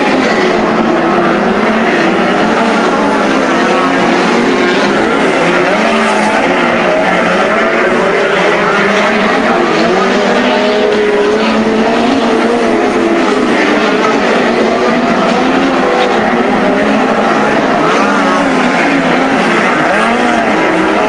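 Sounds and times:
racing car engines: 0.0s - 21.0s.

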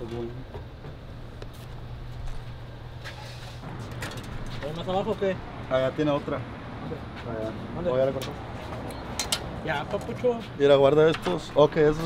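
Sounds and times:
man talking: 9.6s - 12.0s.

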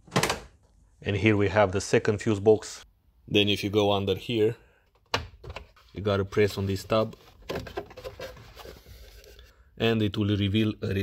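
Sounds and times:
plastic handling noise: 4.9s - 9.5s.

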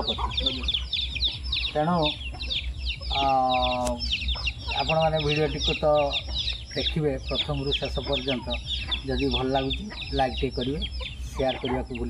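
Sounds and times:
man talking: 0.0s - 0.7s, 1.7s - 2.2s, 3.1s - 4.1s, 4.7s - 12.0s
chicks peeping: 0.0s - 12.0s.

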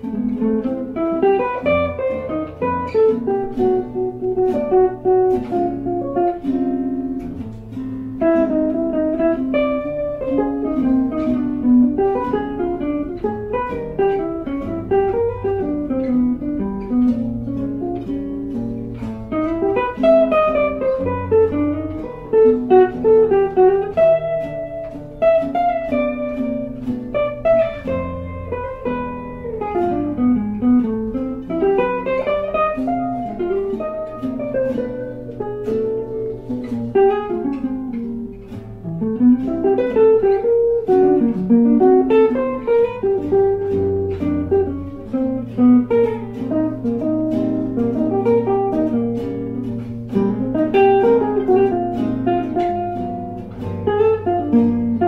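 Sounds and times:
jazz guitars playing: 0.0s - 55.0s.

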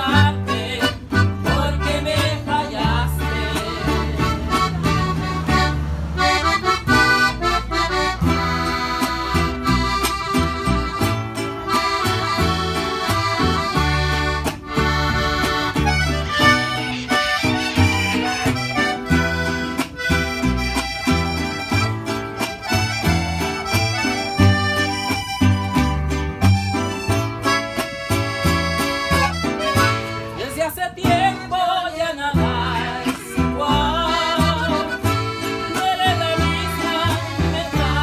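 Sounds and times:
accordion melody: 0.0s - 38.0s
plucked upright bass: 0.0s - 38.0s
strummed acoustic guitar: 0.0s - 38.0s.

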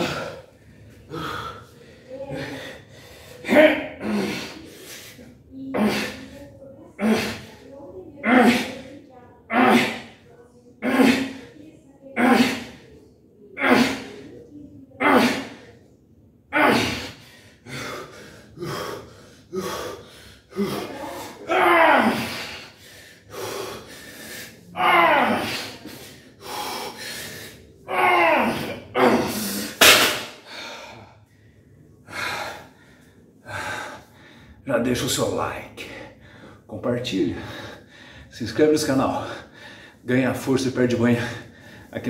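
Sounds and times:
man breathing hard: 0.0s - 5.3s, 22.2s - 24.7s, 25.5s - 27.8s, 39.2s - 40.1s.

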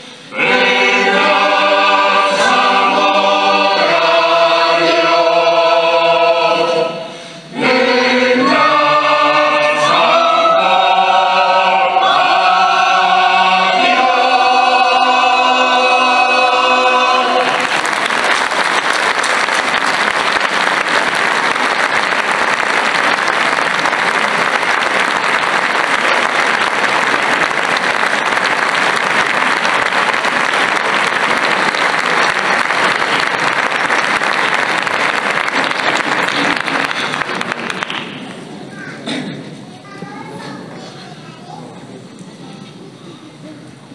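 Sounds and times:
mixed choir singing: 0.0s - 18.7s
audience applause: 17.1s - 38.6s.

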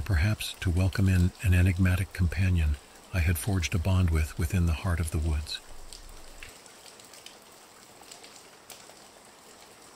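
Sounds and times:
rain hiss: 0.0s - 9.9s
raindrop ticks: 0.0s - 9.9s.

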